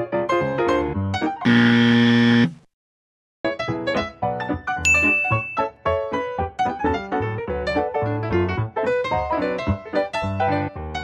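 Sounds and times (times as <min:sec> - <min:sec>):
wrong answer buzzer: 0:01.4 - 0:02.7
light piano music: 0:03.5 - 0:11.0.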